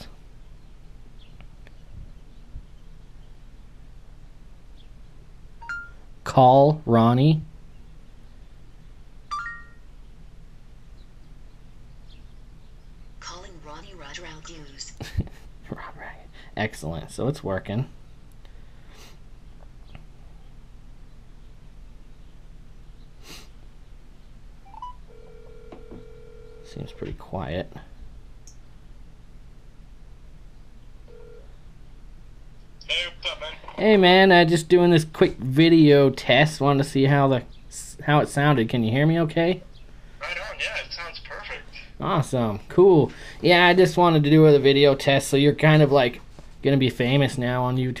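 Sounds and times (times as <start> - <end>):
low background hum: 0.0 - 48.0
quiet ringback tone: 5.6 - 6.0, 9.3 - 9.9, 24.7 - 27.0
rising two-tone prompt beep: 5.6 - 6.0, 9.3 - 9.8.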